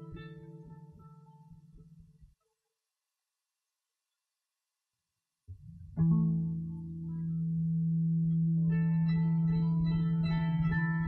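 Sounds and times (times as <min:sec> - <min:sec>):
plucked guitar notes: 0:00.0 - 0:02.0, 0:05.8 - 0:11.0.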